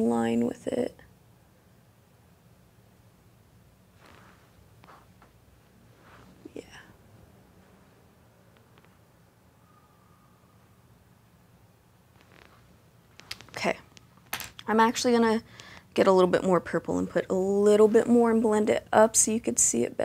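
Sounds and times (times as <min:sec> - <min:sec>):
faint low hum: 0:00.0 - 0:20.0
faint soft sounds: 0:02.8 - 0:16.1.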